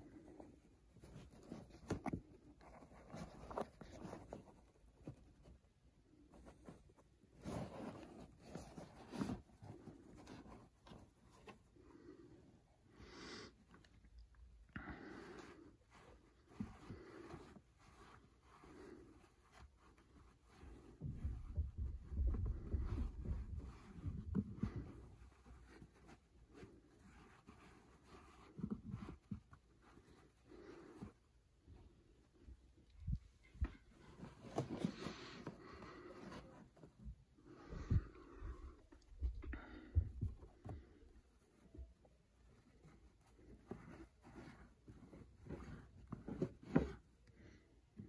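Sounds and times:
hands rustling fabric caps: 0.0s - 48.0s.

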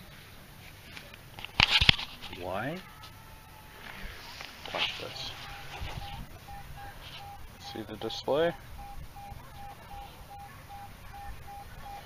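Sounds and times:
metal detector beeping: 3.9s - 12.0s.

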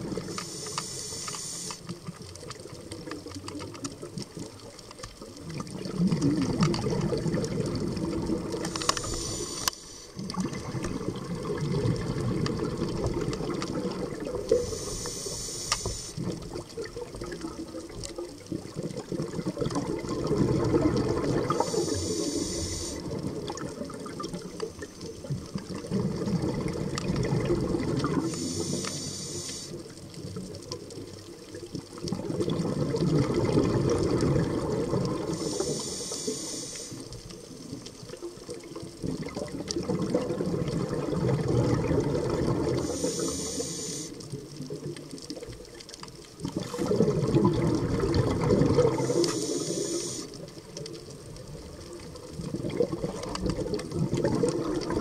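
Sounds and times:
exhaust bubbles rumbling: 0.0s - 0.3s, 5.4s - 8.8s, 10.2s - 14.7s, 16.2s - 22.0s, 22.9s - 28.3s, 31.8s - 35.6s, 38.8s - 43.0s, 46.4s - 49.3s, 50.6s - 55.0s
regulator inhale hiss: 0.1s - 2.0s, 8.6s - 10.3s, 14.4s - 16.4s, 21.4s - 23.2s, 28.1s - 30.0s, 35.2s - 37.5s, 42.7s - 44.4s, 48.9s - 50.6s.

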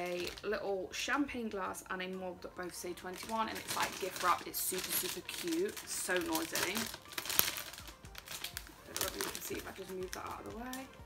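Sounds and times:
cellophane crinkling: 0.0s - 0.7s, 2.0s - 11.0s.

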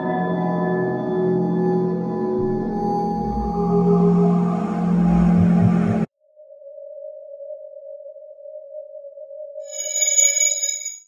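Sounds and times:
steady synthesized hum tone: 2.5s - 6.1s
high shimmering chime: 9.7s - 11.0s.

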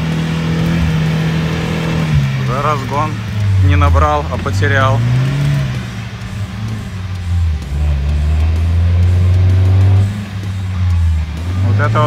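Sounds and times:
background music: 0.0s - 12.0s
car engine under load: 0.0s - 12.0s.

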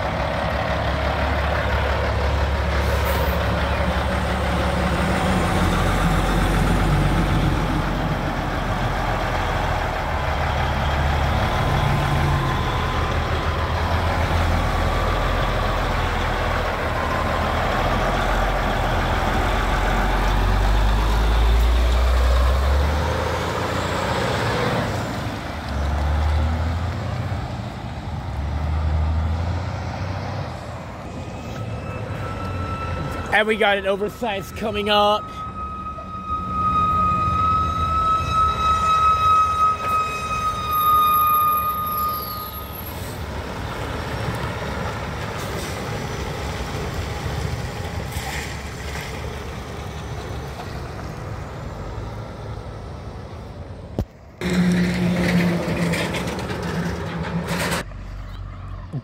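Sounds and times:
diesel truck engine passing: 0.0s - 59.0s.

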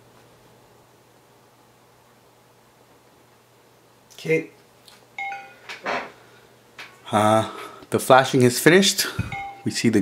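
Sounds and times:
two-note computer chime: 5.2s - 5.6s, 9.3s - 9.8s.

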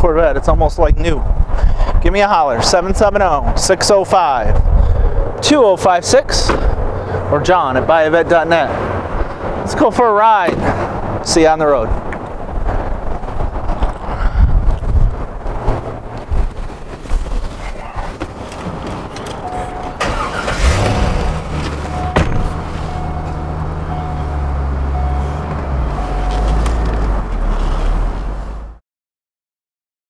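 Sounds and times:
low rumbles and knocks: 11.8s - 20.0s, 20.8s - 24.0s
car engine starting and idling: 15.8s - 28.7s
warning chime beeping: 19.4s - 20.7s, 21.8s - 26.5s.

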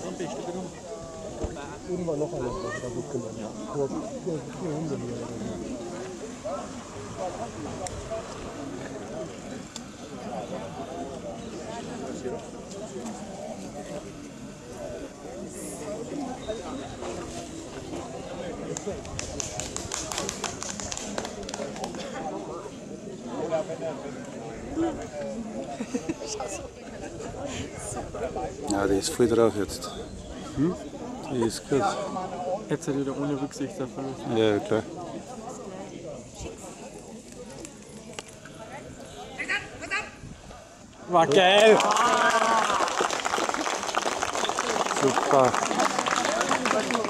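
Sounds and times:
faint indistinct voices: 0.0s - 47.0s
murmur of people talking: 0.0s - 47.0s.

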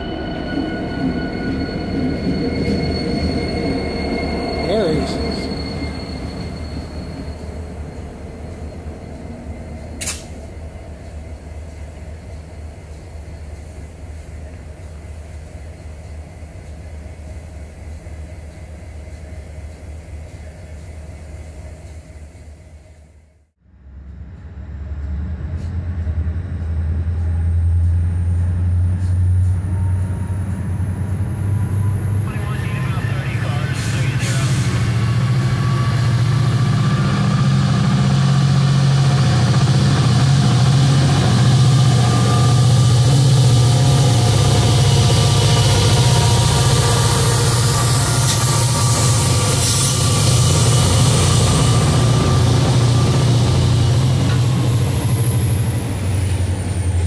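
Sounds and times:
high whine: 0.0s - 10.6s, 23.9s - 57.0s
locomotive engines droning: 0.0s - 57.0s.

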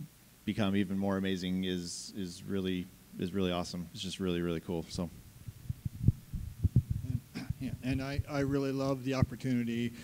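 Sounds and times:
microphone handling thumps: 5.1s - 8.5s.

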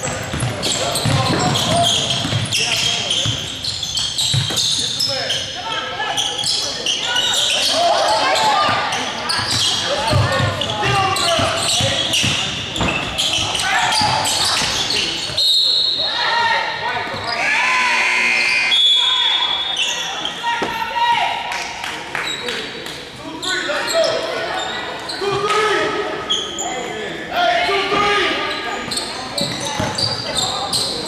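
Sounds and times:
basketball bouncing: 0.0s - 2.5s, 4.3s - 4.6s, 9.5s - 13.1s, 29.4s - 30.0s
sneakers squeaking on floor: 0.0s - 16.3s, 17.0s - 17.7s, 18.4s - 21.0s, 23.3s - 27.2s, 27.9s - 31.0s.

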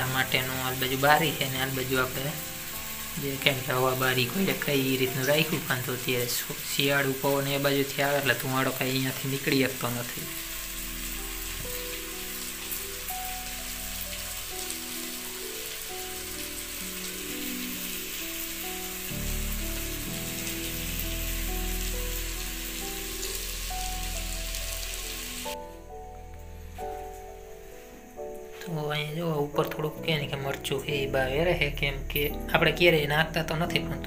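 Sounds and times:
oil sizzling with small pops: 0.0s - 25.6s
soft background music: 0.0s - 34.0s.

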